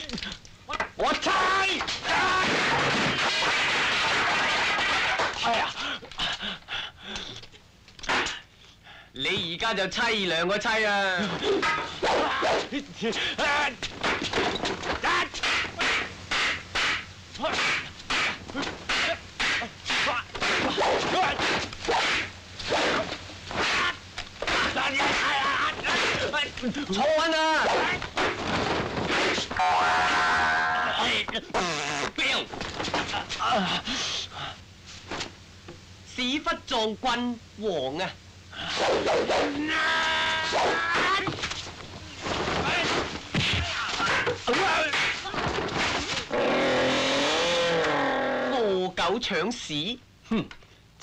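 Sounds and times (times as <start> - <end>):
long wavering vocal cry: 38.6 - 41.3, 46.3 - 48.8.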